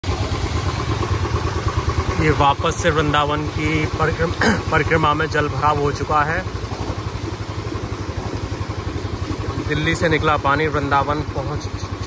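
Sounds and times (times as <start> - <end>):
motorcycle engine running: 0.0 - 12.0
water spraying off tyres: 0.0 - 12.0.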